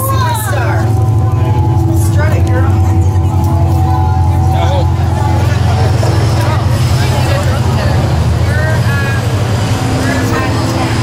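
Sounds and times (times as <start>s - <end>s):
large vehicle engine running: 0.0s - 11.0s
people's voices: 0.0s - 11.0s.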